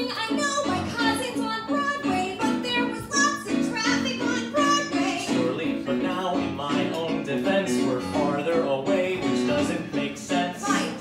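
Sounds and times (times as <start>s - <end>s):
electric keyboard rhythmic notes: 0.0s - 11.0s.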